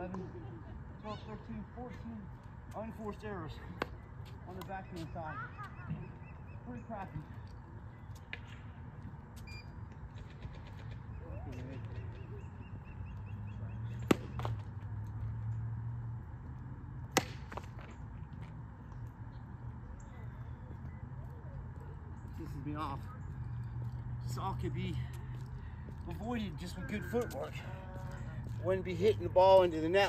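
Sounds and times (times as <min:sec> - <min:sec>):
tennis ball being struck: 0:14.0 - 0:14.6, 0:17.1 - 0:17.7.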